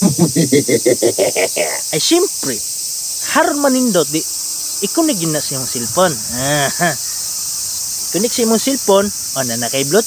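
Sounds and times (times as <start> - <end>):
insects chirring: 0.0 - 10.0
man speaking fast: 1.6 - 2.6, 3.2 - 7.2, 8.1 - 10.0.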